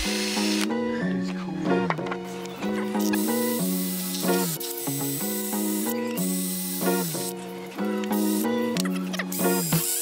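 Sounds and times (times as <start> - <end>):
background music with melody: 0.0 - 10.0.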